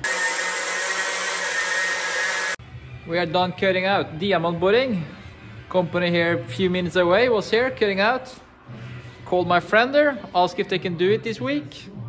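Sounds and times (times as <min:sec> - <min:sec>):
power cutter sawing concrete: 0:00.0 - 0:02.6.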